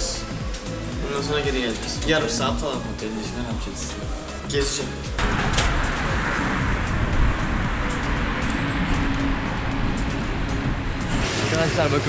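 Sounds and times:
faint background music: 0.0 - 12.0
road traffic rushing: 0.0 - 12.0.

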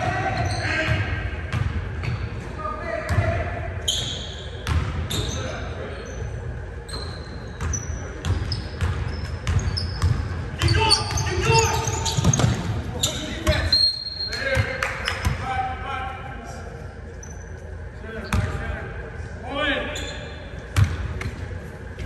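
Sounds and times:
players' voices echoing: 0.0 - 6.8, 7.4 - 22.0.

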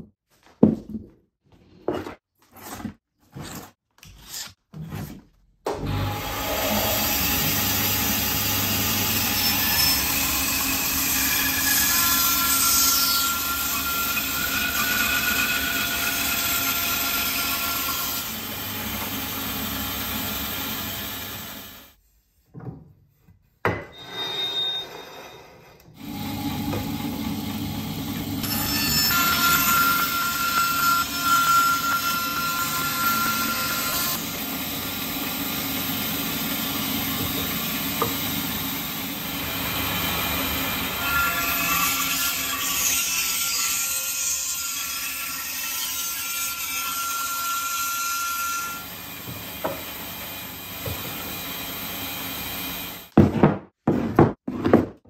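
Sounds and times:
bandsaw cutting wood: 5.8 - 22.0, 26.0 - 53.1.

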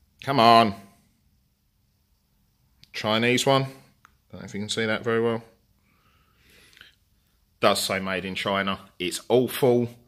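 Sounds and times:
person speaking: 0.1 - 1.0, 2.8 - 5.7, 7.6 - 10.0.

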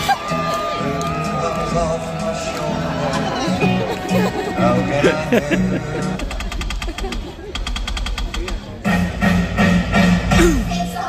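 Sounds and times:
rapid even clicking: 6.2 - 8.8.

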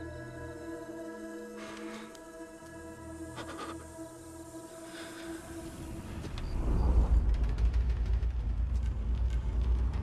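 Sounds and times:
deep low rumble: 6.3 - 10.0.

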